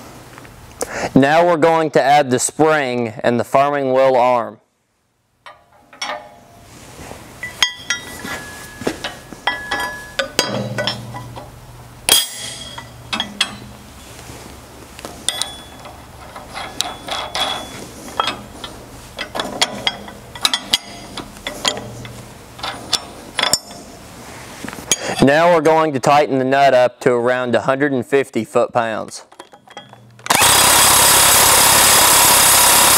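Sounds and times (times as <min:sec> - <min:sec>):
steady low hum: 0:04.8 - 0:25.2
metal parts clinking: 0:07.4 - 0:11.5, 0:12.1 - 0:13.8, 0:15.2 - 0:23.9, 0:29.3 - 0:30.8.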